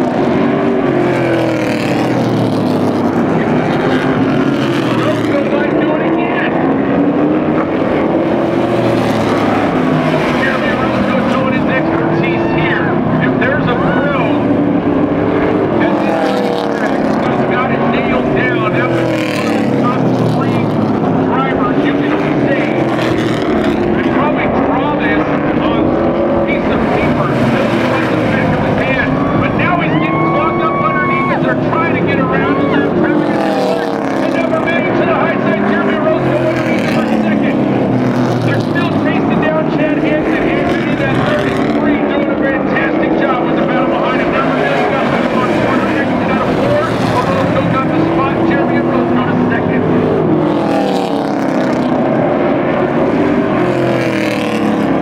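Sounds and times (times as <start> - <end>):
race car engines revving: 0.0 - 55.0.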